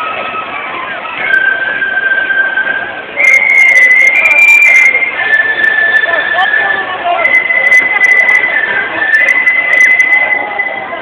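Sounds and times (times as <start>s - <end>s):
high steady whistle: 0.0s - 11.0s.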